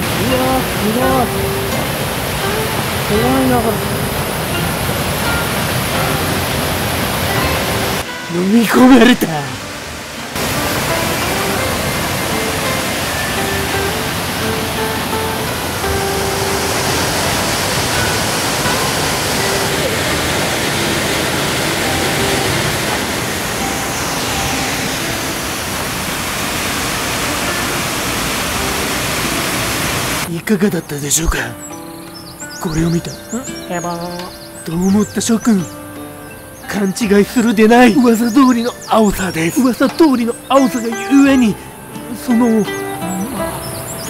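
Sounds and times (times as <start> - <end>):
soft background music: 0.0 - 26.4, 27.1 - 44.0
waterfall rushing over rocks: 0.0 - 44.0.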